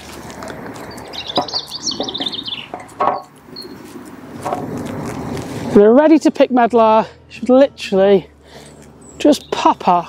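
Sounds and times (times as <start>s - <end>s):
outdoor background noise: 0.0s - 10.0s
small bird twittering: 0.8s - 3.9s
short knocks and rustles: 1.3s - 3.4s, 4.4s - 5.5s.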